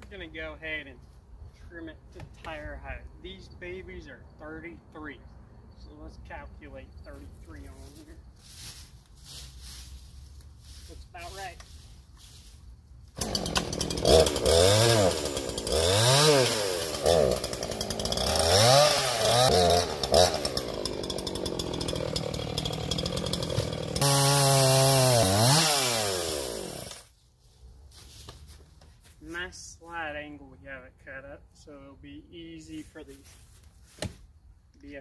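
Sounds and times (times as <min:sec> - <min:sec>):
chainsaw revving and cutting wood: 0:13.1 - 0:27.1.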